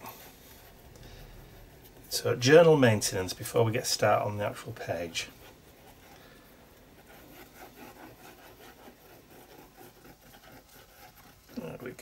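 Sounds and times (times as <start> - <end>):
glue bottle tip scratching paper: 6.9 - 11.9.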